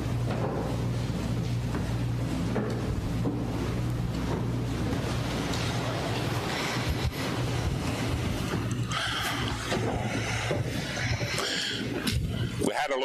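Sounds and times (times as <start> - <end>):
low hum: 0.0 - 12.7
clothing rubbing on microphone: 3.1 - 12.6.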